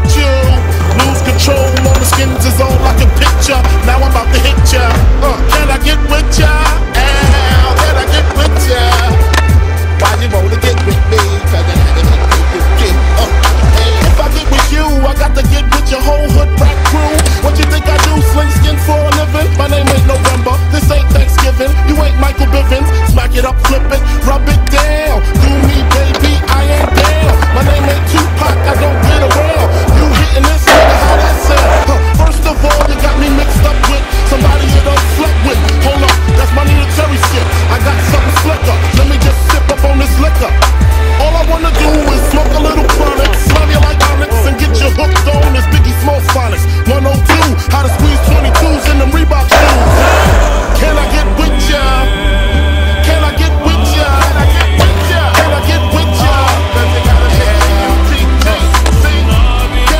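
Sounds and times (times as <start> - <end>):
hip-hop beat with deep bass: 0.0 - 59.9
skateboard rolling and grinding: 0.0 - 59.9.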